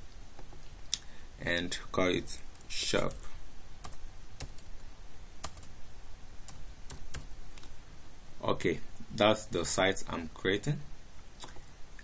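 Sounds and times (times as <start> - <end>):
computer keyboard keystrokes: 3.8 - 4.7, 5.4 - 5.7.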